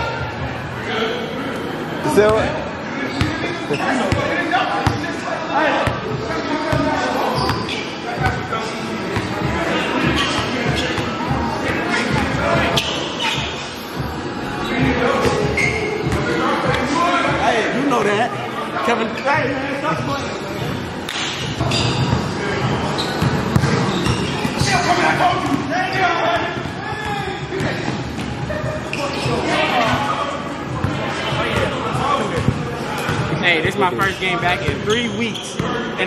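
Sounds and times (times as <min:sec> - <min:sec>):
people talking and calling out: 0:00.0 - 0:36.0
players' voices: 0:00.0 - 0:36.0
basketball bouncing on gym floor: 0:23.1 - 0:24.8, 0:32.4 - 0:33.2.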